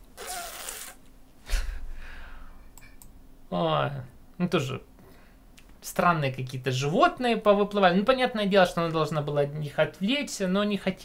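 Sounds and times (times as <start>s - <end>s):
man exhaling forcefully: 1.5s - 2.6s.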